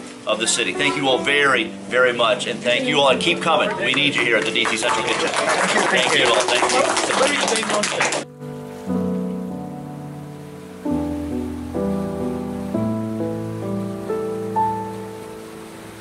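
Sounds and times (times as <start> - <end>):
slow soft piano chords: 0.0 - 16.0.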